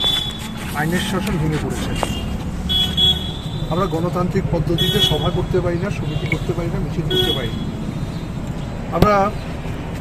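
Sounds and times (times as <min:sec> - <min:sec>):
low traffic rumble: 0:00.0 - 0:10.0
man speaking: 0:03.7 - 0:07.6.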